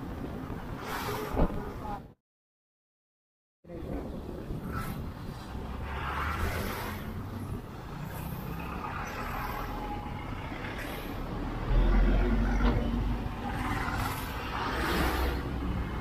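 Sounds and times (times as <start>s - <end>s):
lorries and buses passing: 0.0s - 2.2s, 3.7s - 16.0s.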